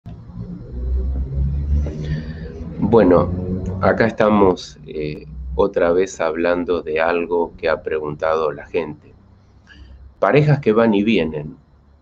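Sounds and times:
deep low rumble: 0:00.0 - 0:09.1.

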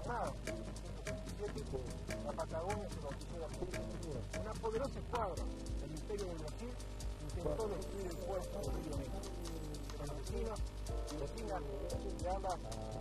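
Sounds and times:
background music: 0:00.0 - 0:13.0
person speaking indistinctly: 0:00.0 - 0:13.0.

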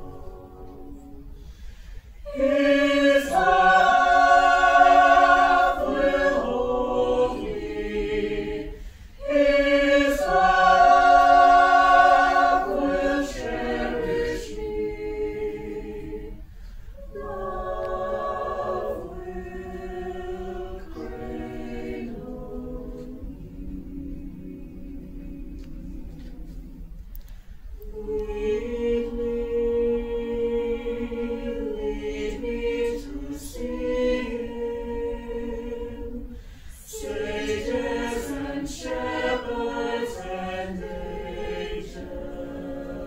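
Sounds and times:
choir singing a cappella: 0:00.0 - 0:43.0.

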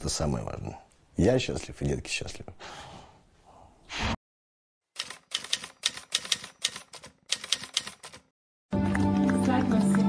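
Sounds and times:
typewriter key clacks: 0:05.0 - 0:08.3.

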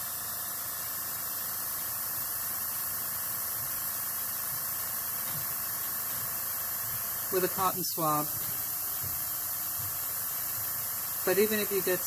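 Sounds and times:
airbrush hissing: 0:00.0 - 0:12.0.

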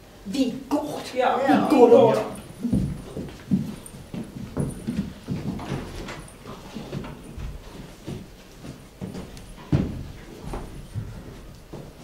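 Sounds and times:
footsteps on wooden stage floor: 0:02.4 - 0:12.0.

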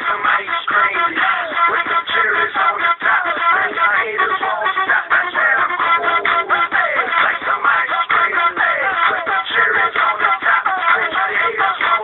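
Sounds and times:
song on car radio: 0:00.0 - 0:12.0.

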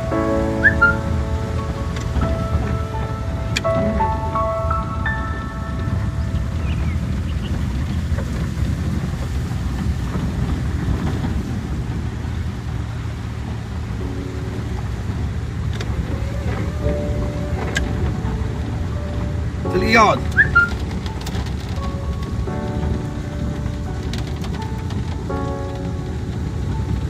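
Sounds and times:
faint steady tones: 0:00.0 - 0:09.8, 0:10.4 - 0:27.0
car engine and tyres rumbling: 0:00.0 - 0:27.0.

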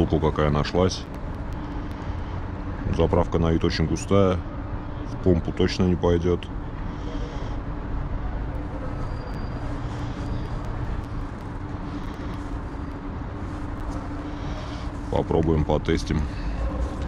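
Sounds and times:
low traffic rumble: 0:00.0 - 0:17.0
steady hum: 0:00.0 - 0:17.0.

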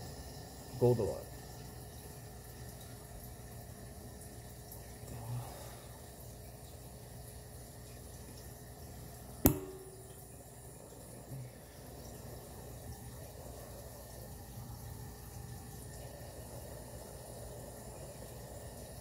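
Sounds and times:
gas torch flame hissing: 0:08.9 - 0:19.0.

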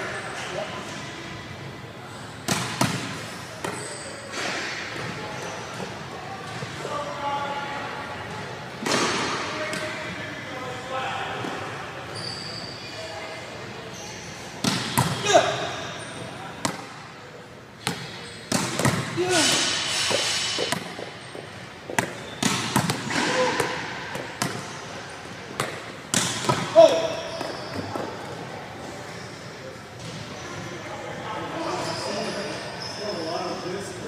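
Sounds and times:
thuds and slaps on court floor: 0:21.9 - 0:24.7.

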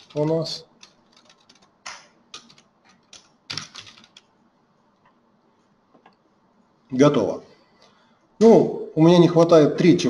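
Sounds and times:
keyboard typing: 0:00.0 - 0:04.3.

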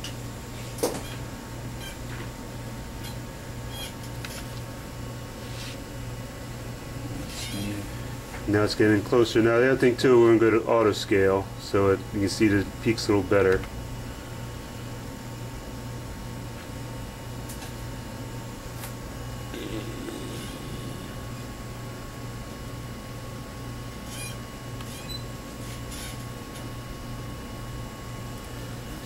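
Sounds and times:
low electrical hum: 0:00.0 - 0:29.0.

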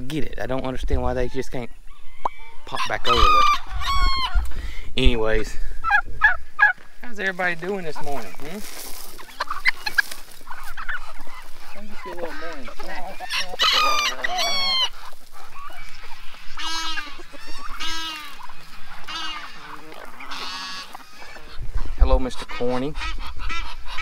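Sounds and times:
chickens and turkeys clucking: 0:00.0 - 0:24.0
rooster crowing loudly: 0:01.9 - 0:04.4, 0:13.2 - 0:14.9.

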